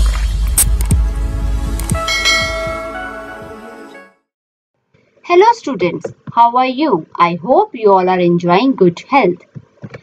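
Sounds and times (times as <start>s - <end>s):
bell-like chime: 2.0s - 3.4s.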